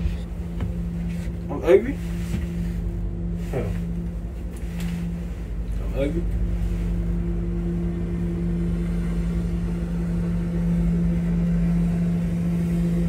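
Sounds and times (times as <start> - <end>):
low mechanical hum: 0.0 - 13.0
low rumble: 0.0 - 13.0.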